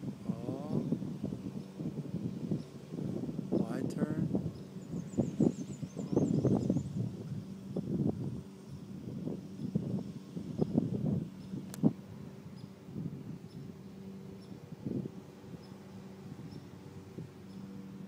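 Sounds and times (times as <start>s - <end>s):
lawn mower engine running: 0.0s - 18.0s.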